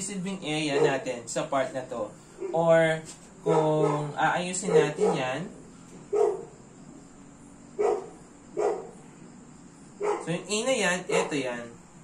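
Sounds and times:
dog barking: 0.7 - 1.1, 3.4 - 5.4, 6.1 - 6.6, 7.8 - 9.0, 10.0 - 10.3, 11.1 - 11.4.

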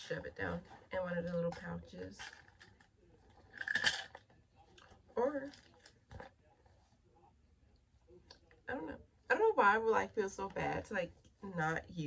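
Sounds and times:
rustling and handling: 0.0 - 7.3.

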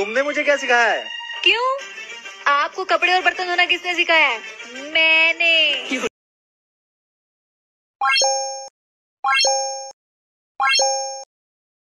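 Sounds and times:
bright chime sound effect: 10.6 - 11.3.

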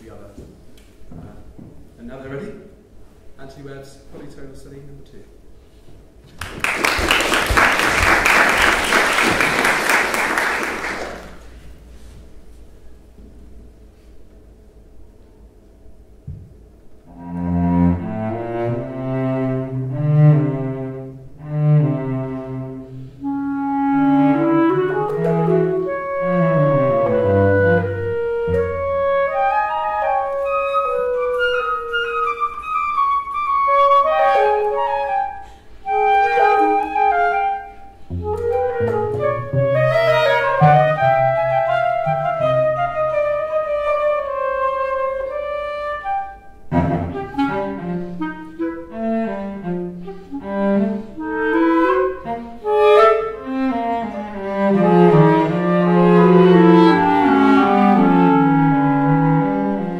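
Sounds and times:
clarinet and cello chamber piece: 17.0 - 59.9.

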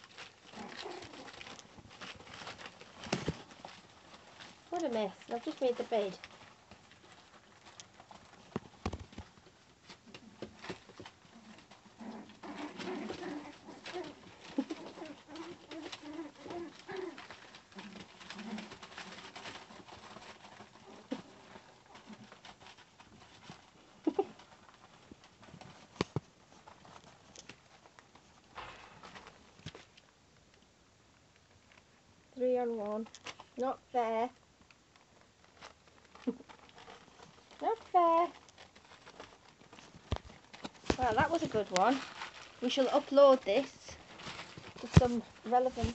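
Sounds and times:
puppies growling: 0.0 - 8.5, 10.0 - 27.4
newspaper rustling: 0.0 - 30.0, 34.8 - 45.9.

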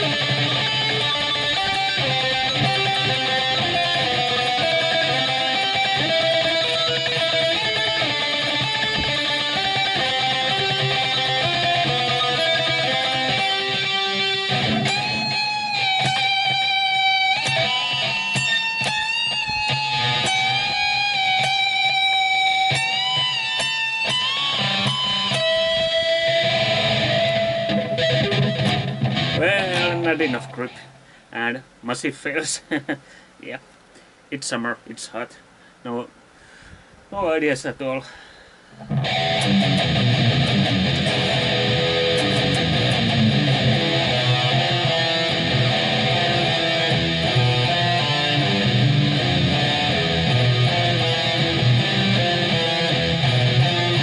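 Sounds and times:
distorted electric guitar: 0.0 - 31.1, 38.7 - 54.0.

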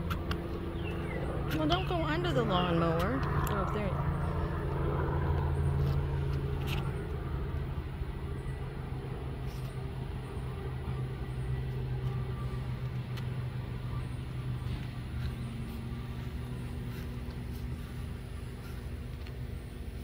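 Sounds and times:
electric lawn mower humming: 0.0 - 20.0.

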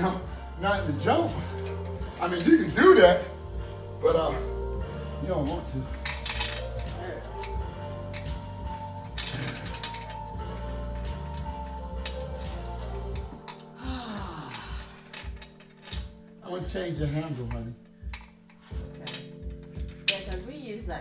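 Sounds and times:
background music: 0.0 - 21.0
metal clinks and rattles: 1.4 - 2.9, 5.8 - 20.8.

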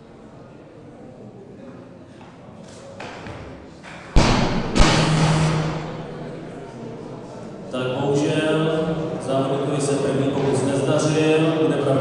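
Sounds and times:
barbell thudding on platform: 4.2 - 6.4.

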